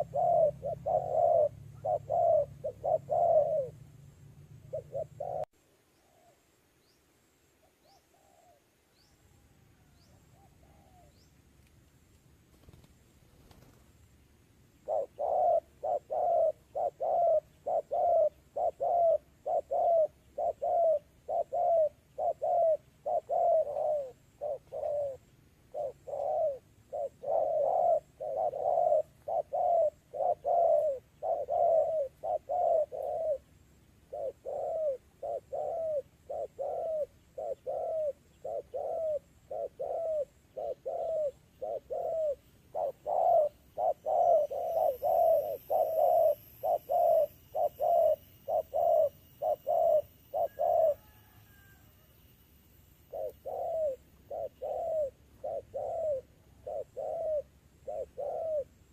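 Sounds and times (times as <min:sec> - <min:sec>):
dove cooing: 0:00.0 - 0:06.4, 0:07.9 - 0:08.7, 0:09.8 - 0:11.2, 0:14.8 - 0:52.2, 0:53.0 - 0:58.9.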